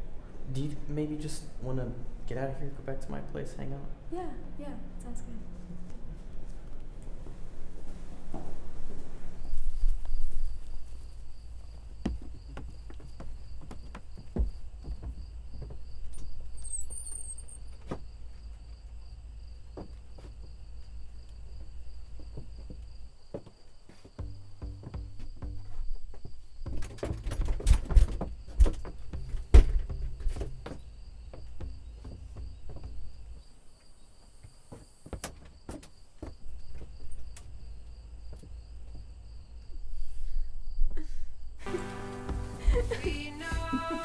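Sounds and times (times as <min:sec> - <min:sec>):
crickets chirping: 0:04.8 - 0:44.0
footsteps on wooden boards: 0:09.8 - 0:16.6, 0:17.6 - 0:39.8, 0:41.6 - 0:44.0.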